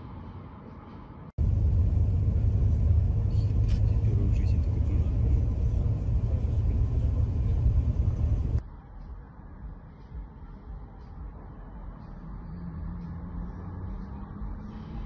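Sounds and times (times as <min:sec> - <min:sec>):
fire burning rumble: 0:01.4 - 0:08.6.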